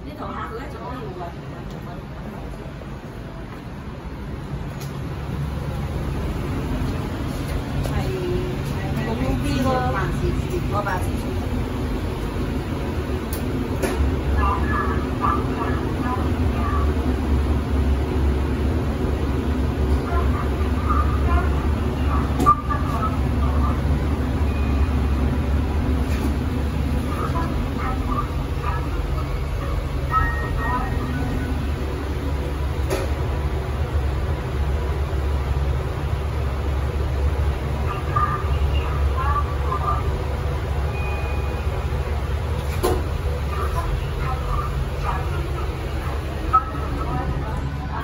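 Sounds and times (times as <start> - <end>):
faint high beep: 24.4 - 25.1, 40.9 - 41.7.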